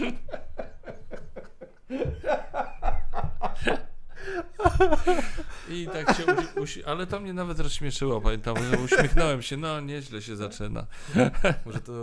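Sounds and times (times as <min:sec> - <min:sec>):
men laughing: 0:00.0 - 0:06.9, 0:08.5 - 0:09.3, 0:11.0 - 0:12.0.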